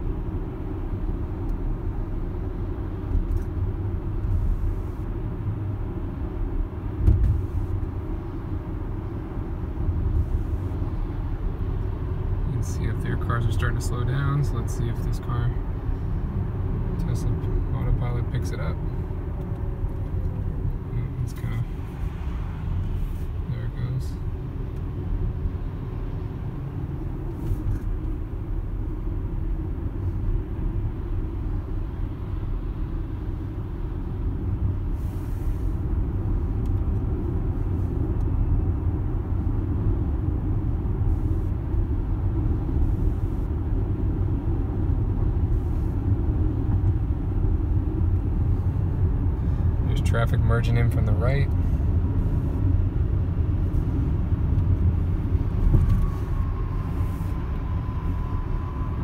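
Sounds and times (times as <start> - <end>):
road and tyre noise in car: 0.0 - 59.0.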